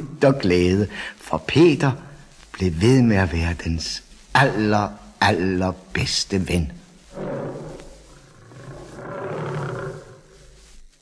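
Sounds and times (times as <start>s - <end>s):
lion roaring: 7.1s - 10.6s.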